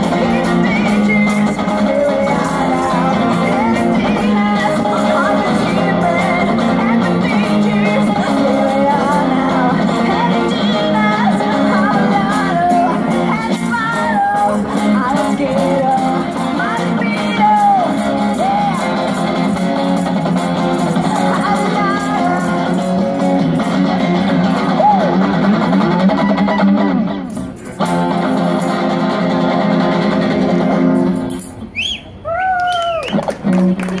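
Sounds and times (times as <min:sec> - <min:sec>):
woman singing sliding notes: 0:00.0 - 0:19.6, 0:20.8 - 0:23.0
electric guitar rock chords: 0:00.0 - 0:31.6.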